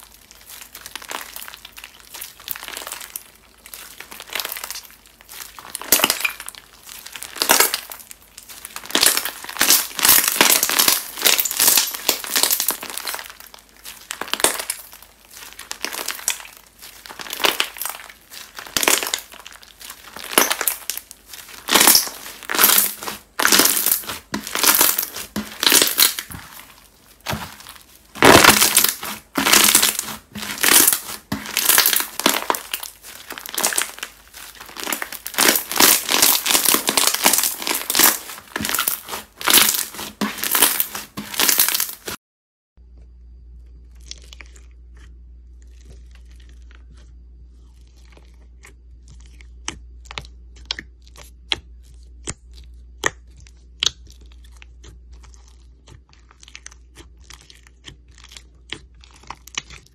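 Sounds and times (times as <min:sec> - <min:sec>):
slime crunchy crackling and popping: 0:00.0 - 0:42.2, 0:43.8 - 0:59.9.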